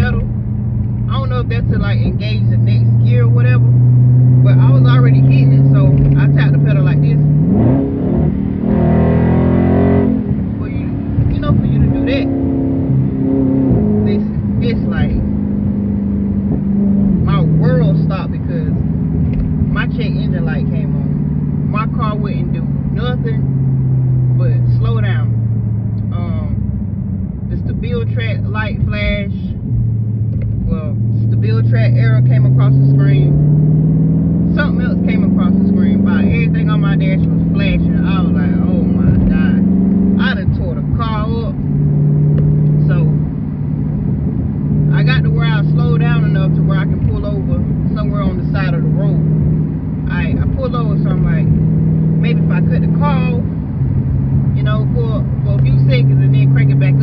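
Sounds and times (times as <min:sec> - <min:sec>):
car engine drone from cabin: 0:00.0 - 0:57.0.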